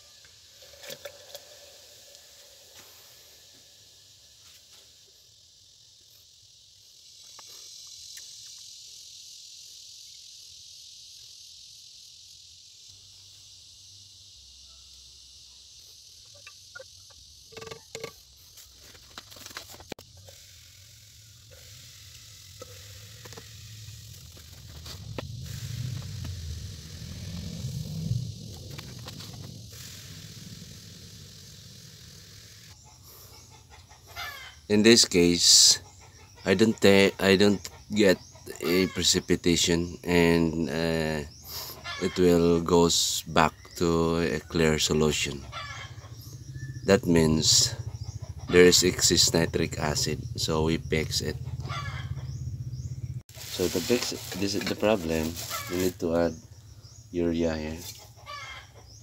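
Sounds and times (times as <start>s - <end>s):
low rumble: 24.8s - 32.1s.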